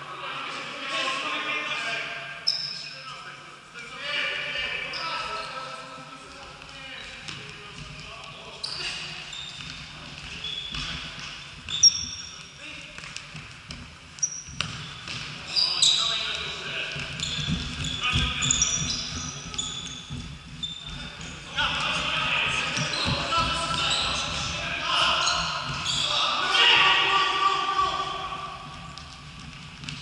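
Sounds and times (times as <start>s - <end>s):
trainers squeaking on court: 2.4s - 3.1s, 4.4s - 5.9s, 6.9s - 12.6s, 14.2s - 27.1s
players shouting: 21.6s - 28.7s.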